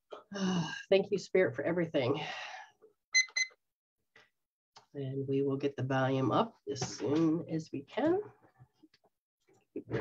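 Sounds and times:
short electronic beeps: 3.2 - 3.5.

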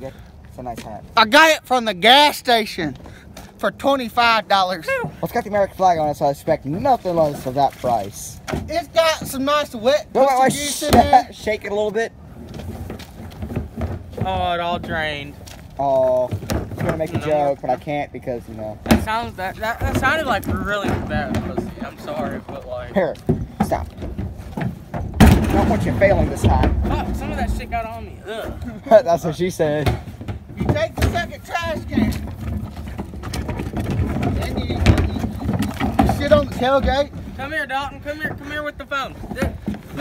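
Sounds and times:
low rumble of handling noise: 5.2 - 40.0
trash can rattling over gravel: 5.7 - 28.2, 28.9 - 40.0
plastic bin knocking: 16.3 - 17.4, 18.8 - 27.6, 29.8 - 38.5.

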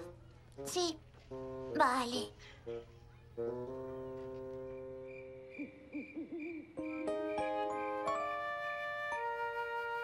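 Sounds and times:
soft music: 0.0 - 5.7, 6.8 - 10.0
faint high chirping: 2.8 - 8.4
cartoon owl hooting: 5.4 - 8.0.

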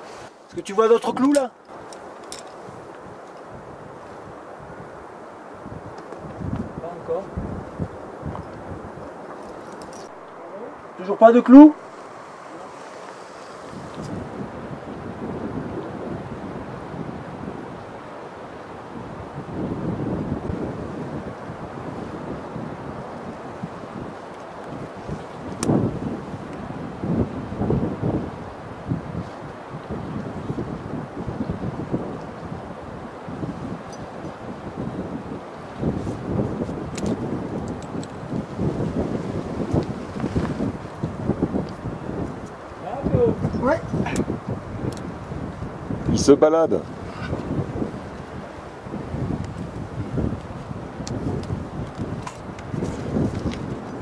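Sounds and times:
wind gusting across microphone: 0.0 - 54.0.

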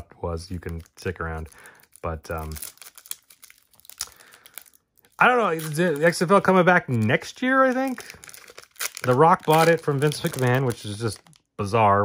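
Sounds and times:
foil wrapper crinkling: 0.5 - 11.7.

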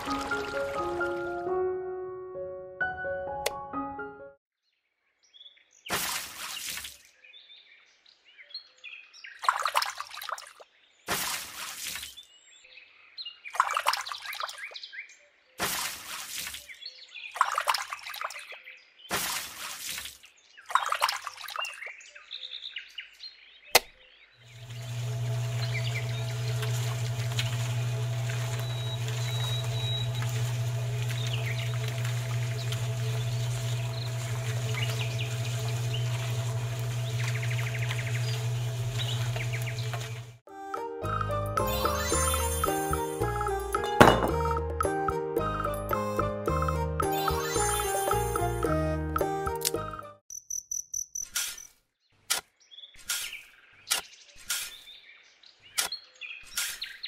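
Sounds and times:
pouring: 0.0 - 1.5, 5.9 - 7.0, 9.4 - 12.2, 15.6 - 16.7, 19.1 - 21.8, 24.5 - 40.4
electric mixer motor humming: 24.5 - 40.4.

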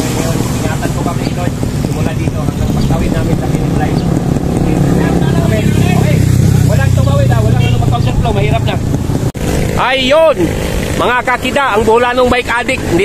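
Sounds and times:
low rumble: 0.0 - 10.0
people talking and calling out: 0.0 - 13.0.

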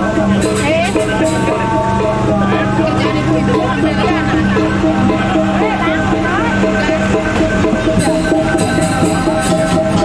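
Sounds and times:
gamelan music: 0.0 - 10.0
people's voices: 0.0 - 10.0.

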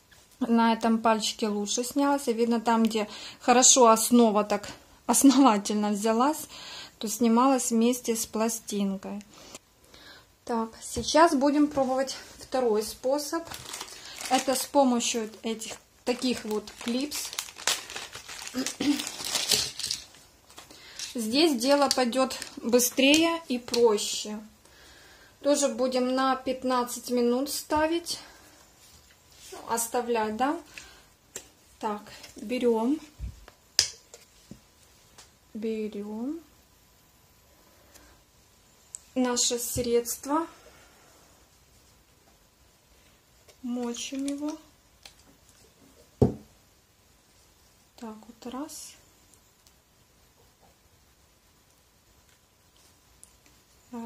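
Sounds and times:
plastic clips rustling: 13.2 - 24.0
plastic bottle bump: 46.2 - 46.5.

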